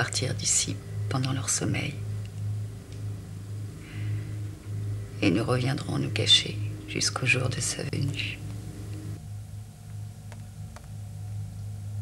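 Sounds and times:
low pulsing hum: 0.0s - 12.0s.

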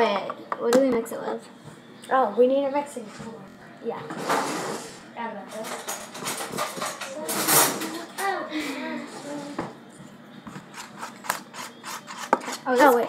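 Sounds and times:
children talking: 0.0s - 9.8s, 12.0s - 13.0s.

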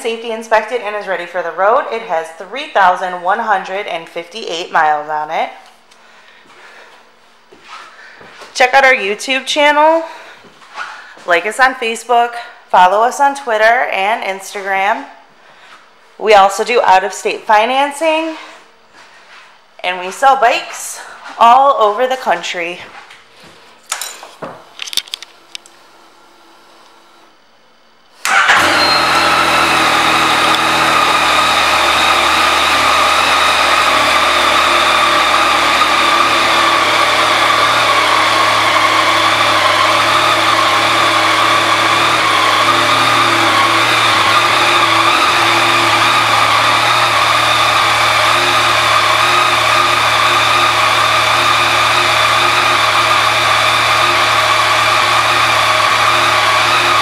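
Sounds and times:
motorcycle engine starting and idling: 28.2s - 57.0s.

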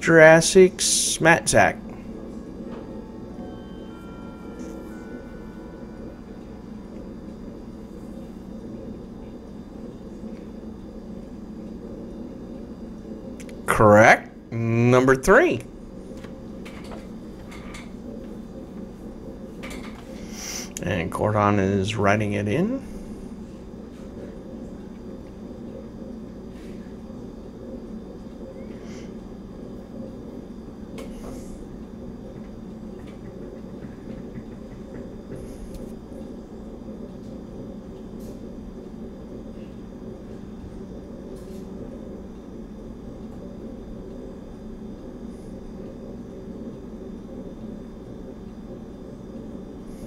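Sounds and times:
low room hum: 0.0s - 50.0s.

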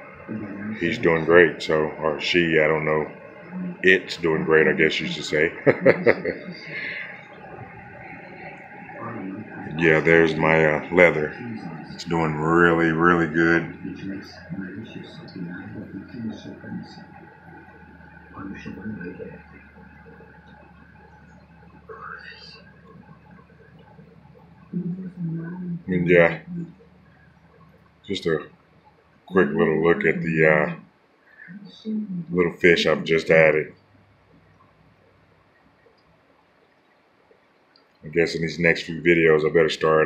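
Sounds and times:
aquarium equipment hum: 0.0s - 40.0s
man murmuring: 0.3s - 3.1s, 3.8s - 7.0s, 9.0s - 16.9s, 18.4s - 19.4s, 25.9s - 26.4s, 28.1s - 28.4s, 29.4s - 30.8s, 32.3s - 33.7s, 38.1s - 40.0s.

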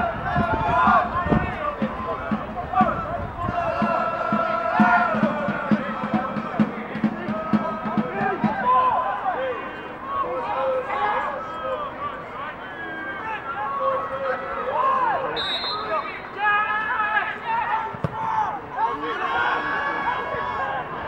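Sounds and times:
people shouting and calling: 0.0s - 21.0s.

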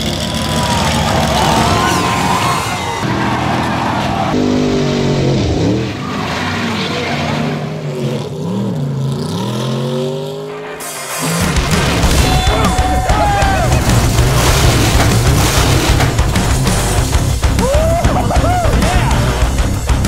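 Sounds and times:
racing car engines revving: 0.0s - 20.0s
tyres skidding: 0.0s - 20.0s.

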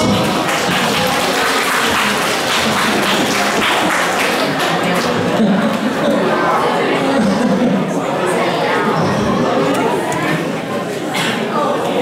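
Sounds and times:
students applauding: 0.0s - 5.4s.

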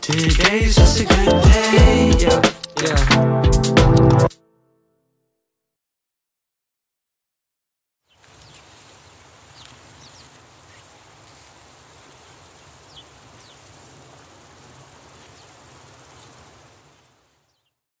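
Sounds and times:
birds chirping: 8.0s - 17.8s
steady hiss: 8.1s - 17.6s.

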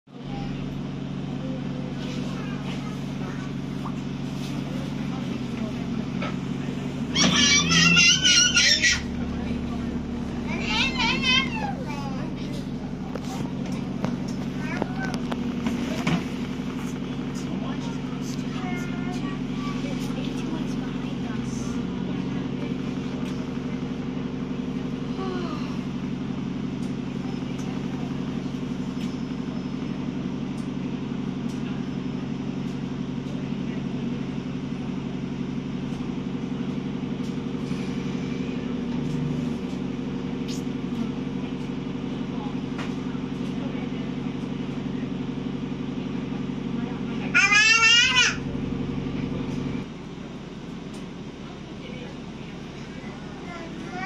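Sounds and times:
bus engine droning: 0.0s - 54.0s
toddler squealing: 7.1s - 9.1s.

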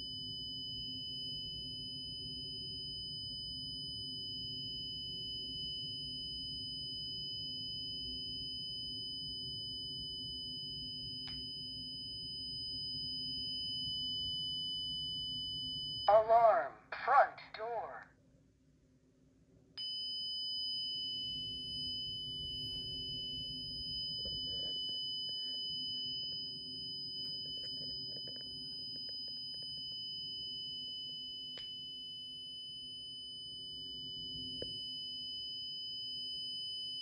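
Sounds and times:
high-pitched alarm tone: 0.0s - 16.7s, 19.8s - 37.0s.

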